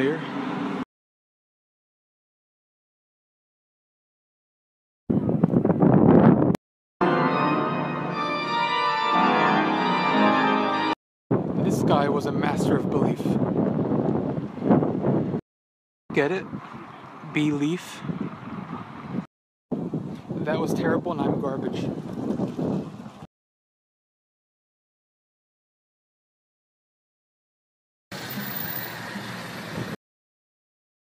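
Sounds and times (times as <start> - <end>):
wind buffeting microphone: 5.1 - 6.6, 11.3 - 15.4, 16.1 - 23.3.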